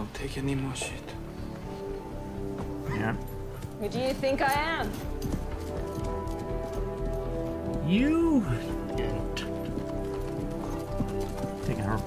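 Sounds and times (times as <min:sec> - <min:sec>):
horses' hooves clip-clopping: 0:00.6 - 0:12.0.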